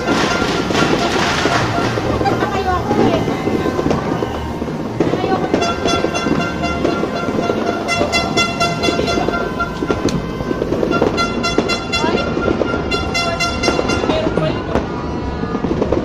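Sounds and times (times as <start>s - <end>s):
horn tooting: 0.0s - 14.7s
sparkler spraying sparks: 0.0s - 14.8s
fireworks crackling: 0.0s - 16.0s.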